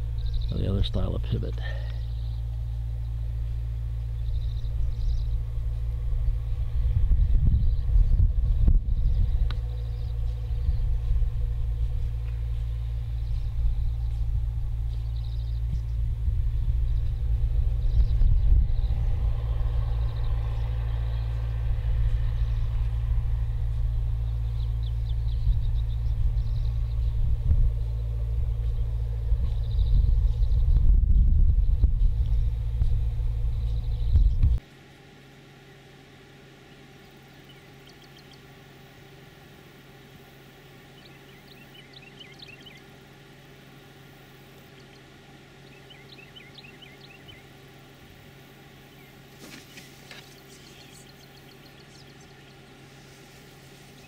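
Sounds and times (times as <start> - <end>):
wind buffeting microphone: 2.2 - 34.6.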